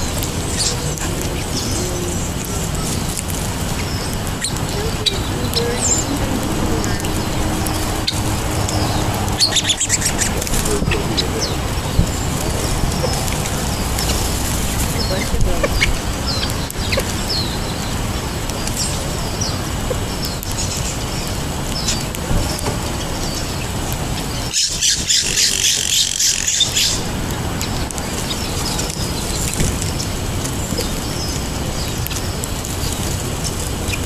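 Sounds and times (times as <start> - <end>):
low background noise: 0.0 - 34.0
rapid high-pitched bird chatter: 0.0 - 34.0
small birds chirping: 0.0 - 34.0.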